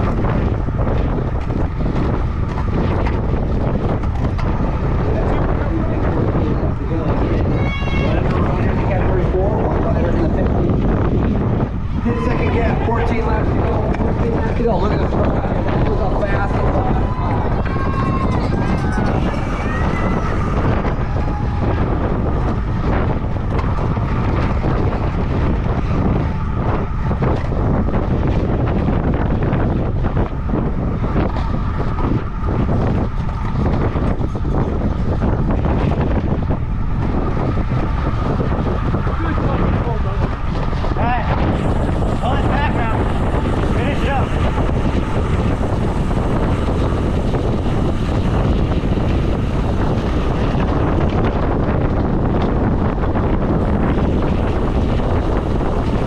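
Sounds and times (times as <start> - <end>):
wind rumbling over microphone: 0.0 - 56.0.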